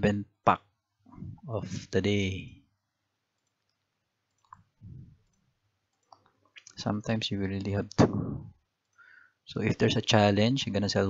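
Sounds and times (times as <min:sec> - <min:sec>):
computer mouse clicks: 0:03.4 - 0:06.8.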